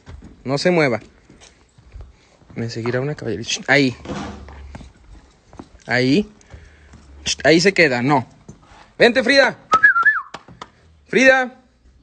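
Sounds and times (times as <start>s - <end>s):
hooves clopping on cobblestones: 4.4s - 7.8s.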